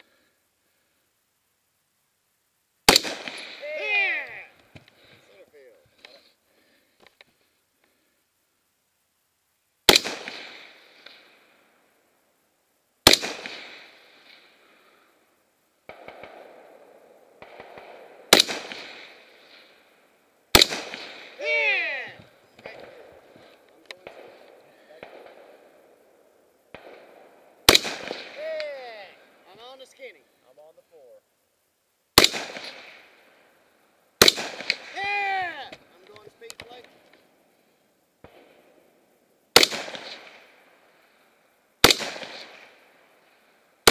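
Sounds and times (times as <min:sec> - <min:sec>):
rifle shots: 0:02.9 - 0:04.4, 0:09.9 - 0:11.6, 0:13.0 - 0:14.6, 0:15.9 - 0:19.8, 0:20.5 - 0:26.0, 0:26.7 - 0:29.4, 0:32.2 - 0:33.5, 0:34.2 - 0:35.4, 0:38.2 - 0:38.8, 0:39.5 - 0:40.9, 0:41.8 - 0:43.1.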